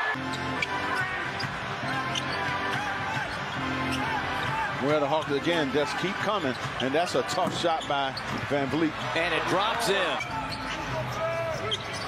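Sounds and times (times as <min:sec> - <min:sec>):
arena music: 0:00.0 - 0:12.0.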